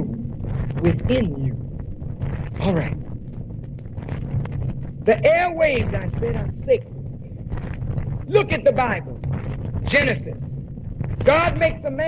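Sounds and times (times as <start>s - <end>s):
low room rumble: 0.0s - 12.0s
vinyl record clicks and pops: 0.0s - 12.0s.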